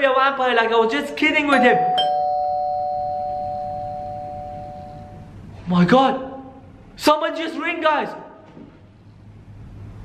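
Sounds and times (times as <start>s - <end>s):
two-tone doorbell chime: 1.5s - 5.3s.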